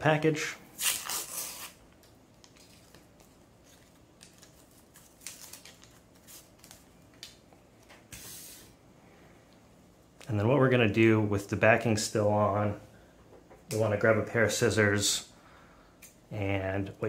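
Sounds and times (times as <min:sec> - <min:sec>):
paper wrapper peeling: 0:00.8 - 0:01.8, 0:02.4 - 0:07.4
paper crinkling: 0:02.4 - 0:07.4.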